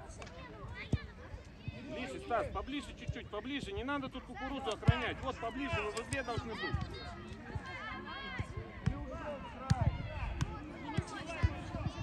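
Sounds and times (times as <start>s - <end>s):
football being kicked: 9.6s - 12.0s.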